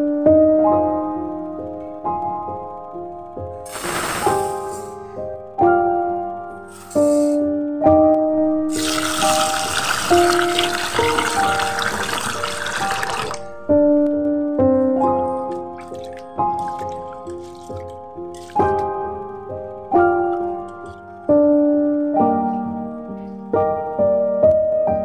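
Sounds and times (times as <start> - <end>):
gentle piano music: 0.0 - 25.0
rice pouring into steel bowl: 8.7 - 13.6
tap water running into bowl: 8.7 - 13.6.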